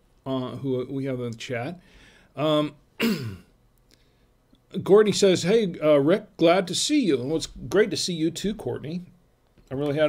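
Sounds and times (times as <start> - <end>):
man speaking: 0.3 - 1.8, 2.4 - 2.8, 4.7 - 10.0.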